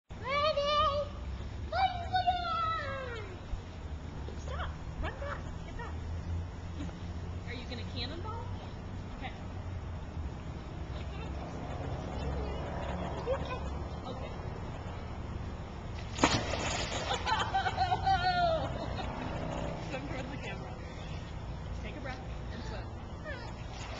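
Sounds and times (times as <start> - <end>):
child yelling: 0.2 - 3.4
water sloshing: 15.8 - 17.9, 23.3 - 23.9
splash into pool: 16.0 - 17.4.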